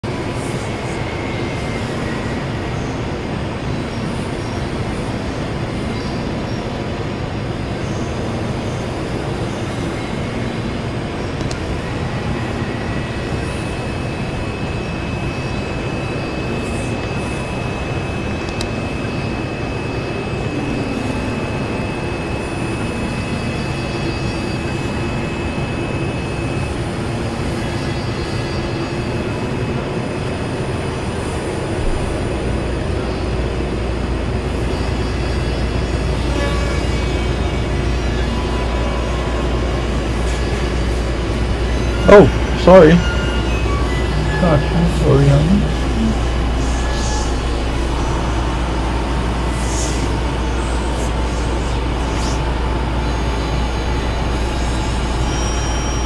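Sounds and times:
synthesizer noise drone: 0.0 - 56.0
thin high tone: 34.7 - 53.0.

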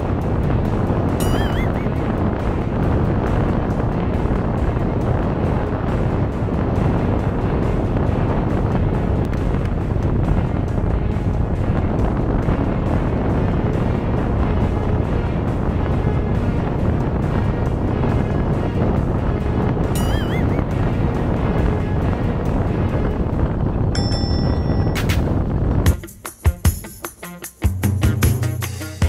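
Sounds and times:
motorboat engine at speed: 0.0 - 24.4
wind buffeting microphone: 0.0 - 26.2
background music: 0.0 - 29.0.

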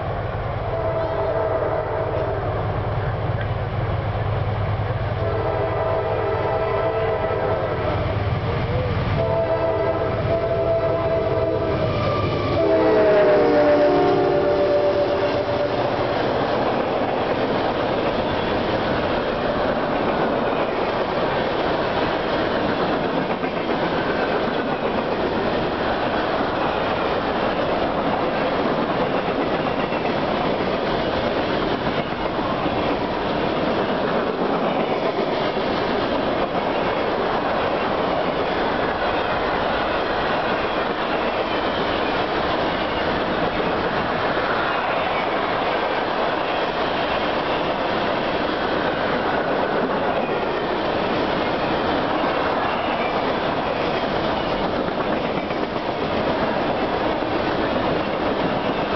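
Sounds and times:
train horn chord: 0.6 - 2.5, 5.2 - 7.8, 9.2 - 16.1.

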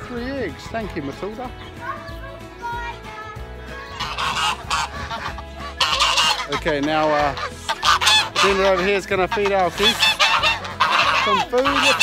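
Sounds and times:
geese honking: 3.6 - 12.0.

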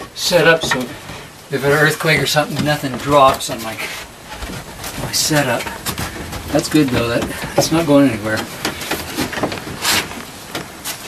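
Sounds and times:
wood scraping on wood: 0.0 - 11.0.

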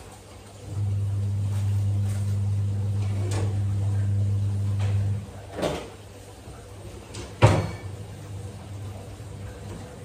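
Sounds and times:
low electric hum: 0.0 - 10.0.

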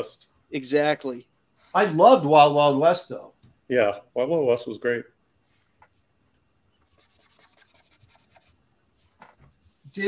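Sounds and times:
faint taps: 3.4 - 3.6
drawing tool scratching on paper: 6.9 - 10.0.

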